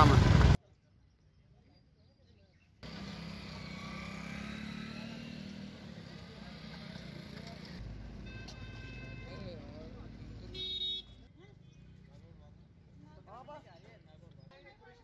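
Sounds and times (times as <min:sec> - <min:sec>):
motorcycles riding past: 0:02.8 - 0:10.7.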